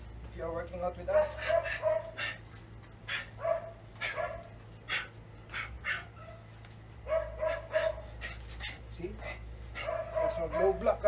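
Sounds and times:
small dog yapping: 1.2 - 2.4, 3.1 - 6.4, 7.1 - 10.8.

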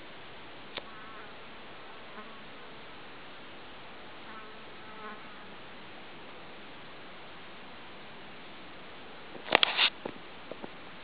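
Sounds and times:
low background hiss: 0.0 - 11.0
flying insects buzzing: 0.7 - 6.0.

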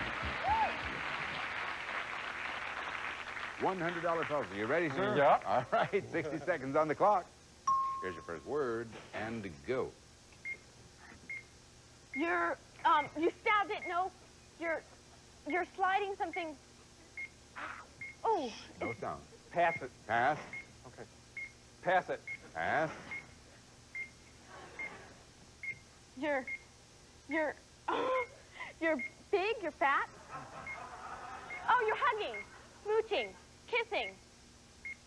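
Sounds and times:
countdown clock beeps: 7.7 - 8.4, 13.0 - 14.0
high-pitched electronic beeps: 7.7 - 8.5.

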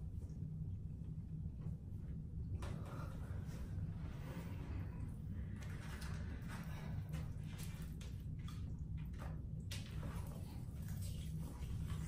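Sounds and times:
steady low hum: 0.0 - 12.0
wet squishes of fried chicken: 7.3 - 12.0.

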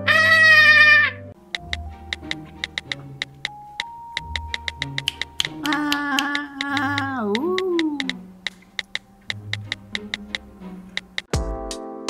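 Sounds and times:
light background music: 0.0 - 12.0
quick uneven ticks: 1.4 - 11.3.

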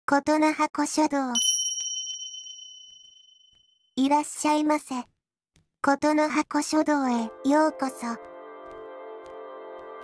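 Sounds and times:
bell-like chime: 1.4 - 3.5.

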